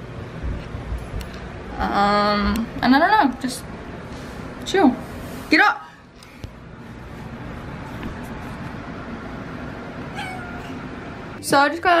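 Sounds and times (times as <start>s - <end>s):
steady background noise: 0.0s - 12.0s
cat meowing: 10.1s - 10.8s.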